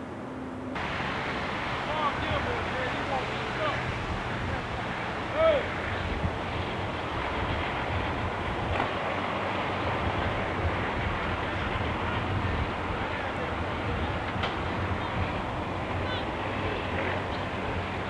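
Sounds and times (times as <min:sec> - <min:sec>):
truck engine rumbling past: 0:00.0 - 0:18.0.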